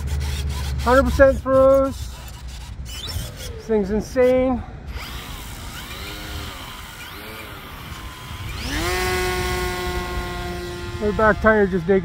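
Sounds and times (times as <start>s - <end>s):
model plane electric motor whine: 4.2s - 12.0s.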